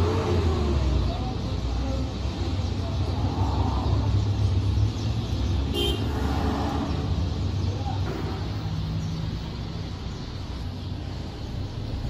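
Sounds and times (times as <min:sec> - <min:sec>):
road traffic rumble: 0:00.0 - 0:12.0
car horn toot: 0:05.7 - 0:06.1.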